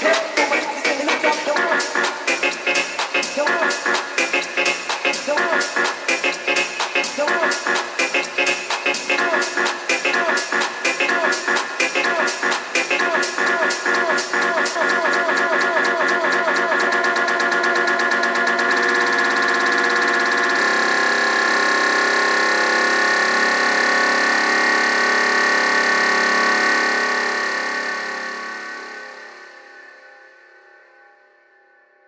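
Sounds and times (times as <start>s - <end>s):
house music: 0.0s - 20.9s.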